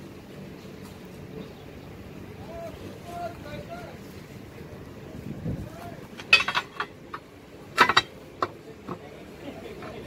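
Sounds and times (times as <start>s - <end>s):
low steady hum: 0.0s - 10.0s
faint voices talking: 0.4s - 10.0s
wind bump on microphone: 5.1s - 6.0s.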